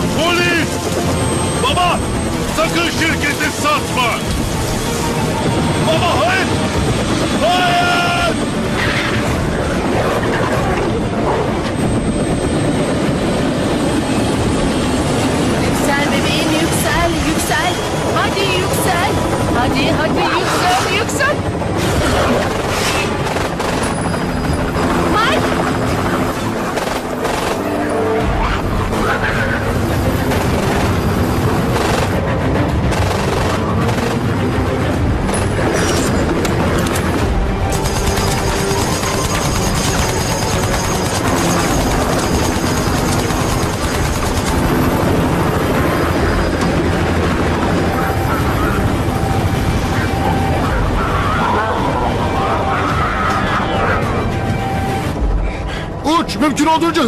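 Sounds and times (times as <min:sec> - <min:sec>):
action film music: 0:00.0 - 0:57.0
voices: 0:47.8 - 0:54.9.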